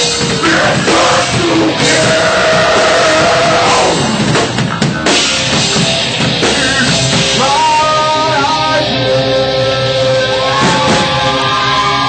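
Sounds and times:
drum kit: 0:00.0 - 0:12.0
rock band playing live: 0:00.0 - 0:12.0.

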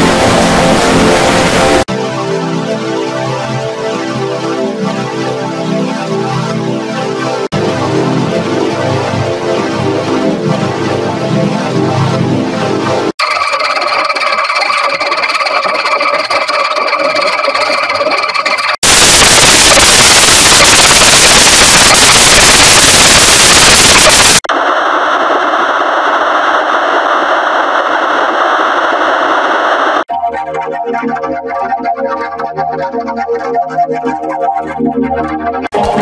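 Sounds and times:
loud burst of static-like noise: 0:00.0 - 0:01.9, 0:18.7 - 0:30.1.

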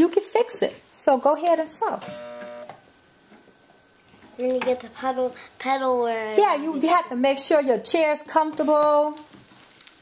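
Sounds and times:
faint steady hum: 0:00.0 - 0:07.9.

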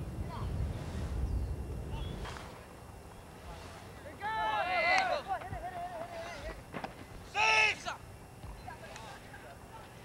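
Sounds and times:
distant voices: 0:00.0 - 0:10.0.

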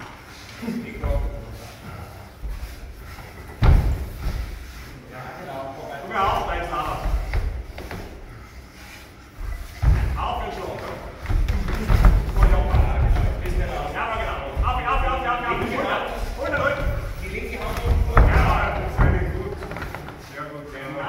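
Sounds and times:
bodies thudding on foam mat: 0:03.5 - 0:04.6.

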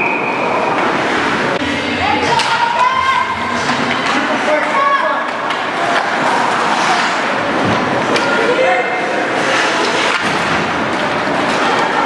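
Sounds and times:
hockey rink noise: 0:00.0 - 0:12.0.

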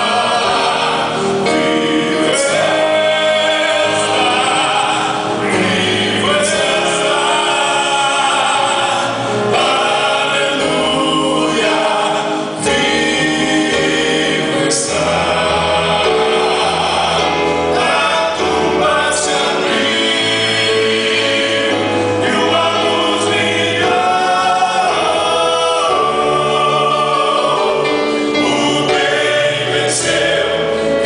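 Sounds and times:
electronic keyboard: 0:00.0 - 0:31.0
male vocal group singing gospel: 0:00.0 - 0:31.0.

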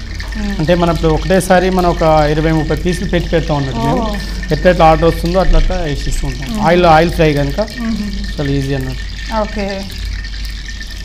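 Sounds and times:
steady low hum: 0:00.0 - 0:11.0
person talking: 0:03.6 - 0:04.8, 0:06.3 - 0:09.9.

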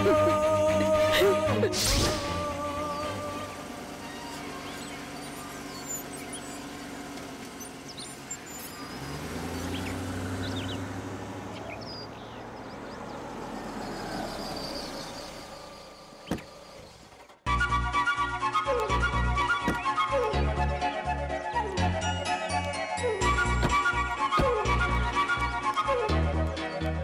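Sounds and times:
car engine idling: 0:00.0 - 0:17.5.

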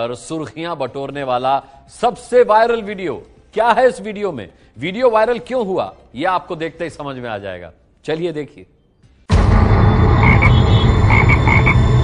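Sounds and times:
frogs croaking: 0:10.2 - 0:11.9.

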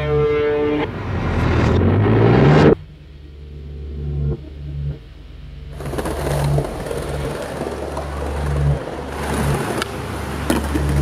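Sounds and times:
low bass notes of music: 0:00.0 - 0:11.0
skateboard wheels rolling on stone: 0:05.7 - 0:11.0.

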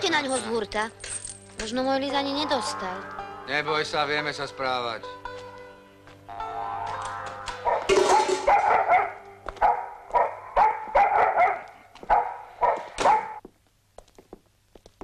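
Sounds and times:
film music: 0:00.0 - 0:10.6
dog barking: 0:07.6 - 0:13.4.

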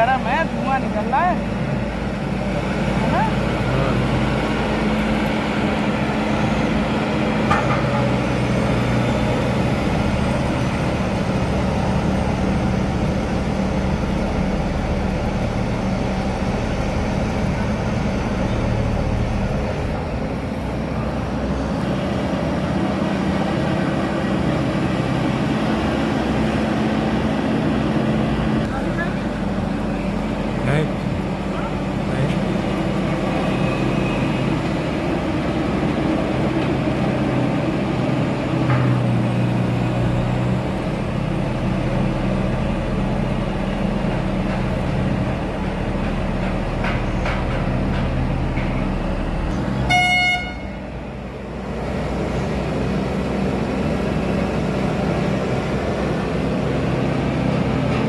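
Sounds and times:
diesel engines droning: 0:00.0 - 0:58.0.

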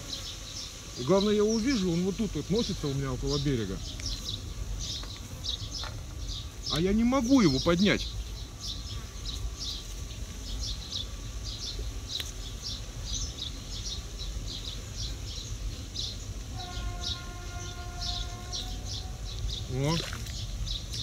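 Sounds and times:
small birds chirping: 0:00.0 - 0:21.0
steady horn-like tone: 0:16.5 - 0:19.3.

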